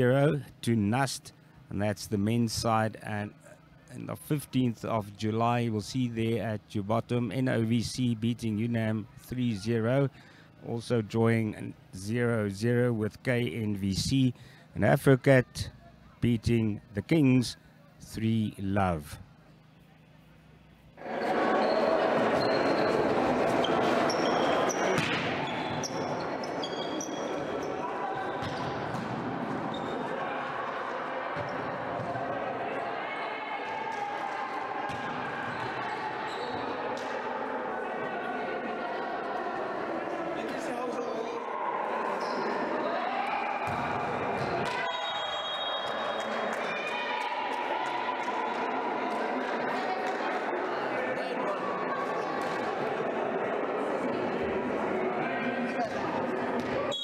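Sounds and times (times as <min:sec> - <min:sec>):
players calling and chattering: 0:00.0 - 0:57.0.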